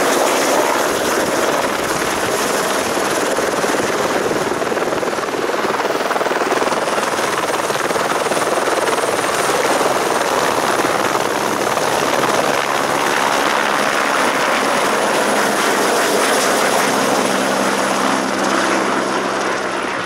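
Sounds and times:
helicopter hovering: 0.0 - 20.0.

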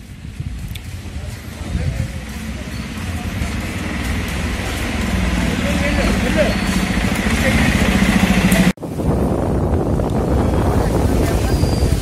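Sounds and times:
vehicle engine running: 0.2 - 8.8
people's voices: 0.7 - 8.8, 10.2 - 12.0.

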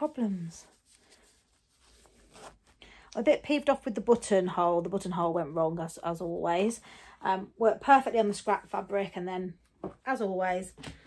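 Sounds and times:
fabric handling: 0.0 - 2.8
zipper closing: 2.0 - 2.6.

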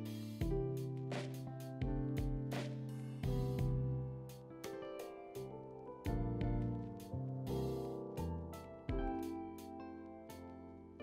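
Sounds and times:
soft plucked and keyboard music: 0.0 - 11.0.

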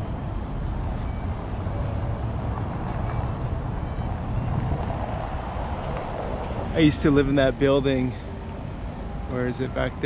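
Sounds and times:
road traffic hum: 0.0 - 10.0
wind on microphone: 2.7 - 6.7.

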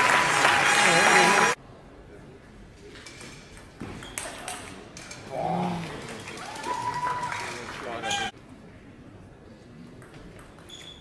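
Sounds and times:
loud shout: 6.4 - 8.3.

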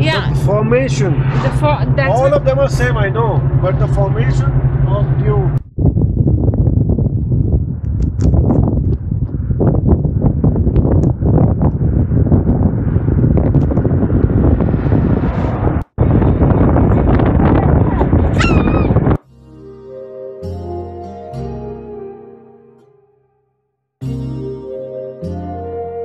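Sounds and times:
vehicle approaching on road: 0.0 - 5.6, 7.5 - 18.4
wind buffeting microphone: 0.0 - 19.2
short high-pitched cry: 18.4 - 19.0.

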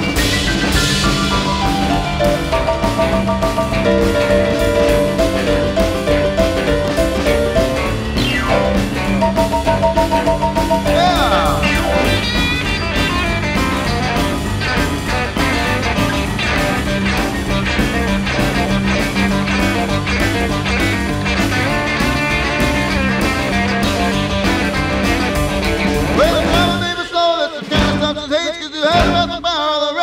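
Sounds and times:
rockabilly band playing: 0.0 - 30.0.

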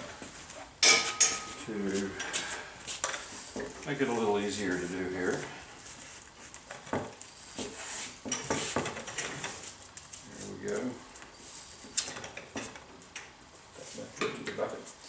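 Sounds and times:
metal tools clinking: 0.8 - 2.3.

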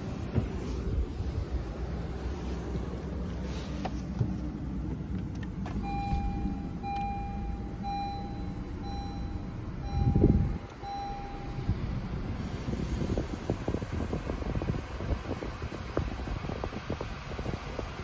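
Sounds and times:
low rumble: 0.0 - 16.4
car warning chime beeping: 5.6 - 11.7.

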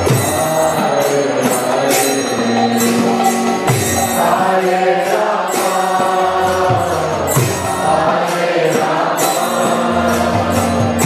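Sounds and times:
devotional chanting: 0.0 - 11.0
sharp percussion strikes: 0.0 - 11.0
sustained accompaniment: 0.0 - 11.0.

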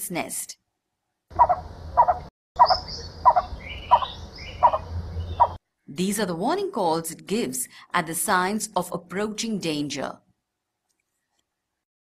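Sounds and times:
bird calling harsh low notes: 1.3 - 5.6.

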